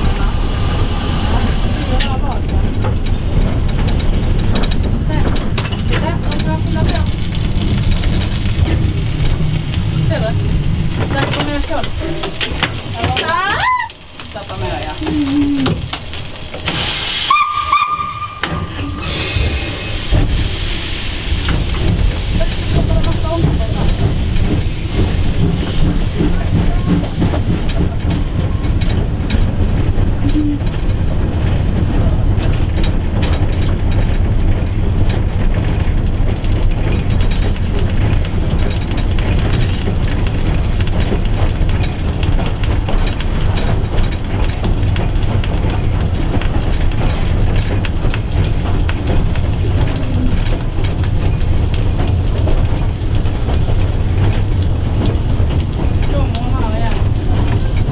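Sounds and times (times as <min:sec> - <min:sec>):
locomotive wheels rumbling on rails: 0:00.0 - 0:57.9
steam hissing: 0:00.0 - 0:57.9
steam whistle blast: 0:17.0 - 0:20.0.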